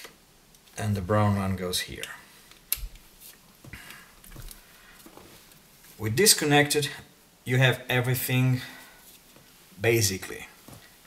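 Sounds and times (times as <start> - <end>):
loose wires rustling: 1.9 - 6.1.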